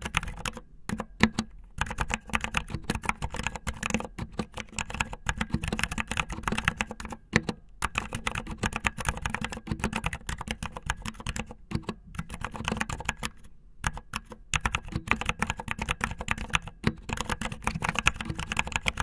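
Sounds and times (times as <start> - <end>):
fast typing on keyboard: 0.0 - 19.0.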